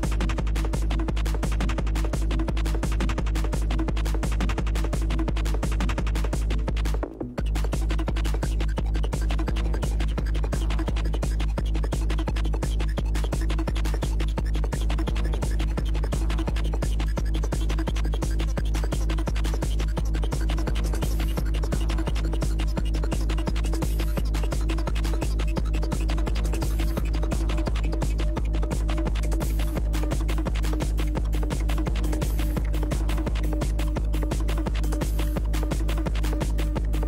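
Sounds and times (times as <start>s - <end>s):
fast kick drum: 0.0s - 37.0s
heavy bassline: 0.0s - 37.0s.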